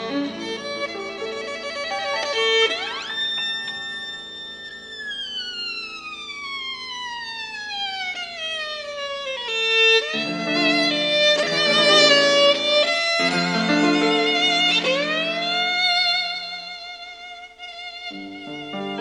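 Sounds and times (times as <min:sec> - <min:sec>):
violin sliding between notes: 0:00.0 - 0:05.1, 0:10.0 - 0:19.0
piano accompaniment: 0:10.1 - 0:16.5, 0:18.4 - 0:19.0.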